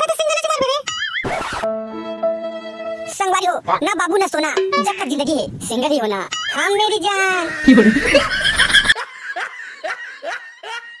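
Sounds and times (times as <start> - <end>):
person laughing: 7.4 - 11.0.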